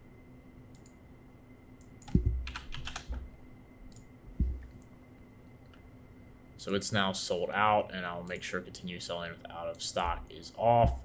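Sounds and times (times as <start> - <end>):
typing on computer keyboard: 2.0 - 3.2.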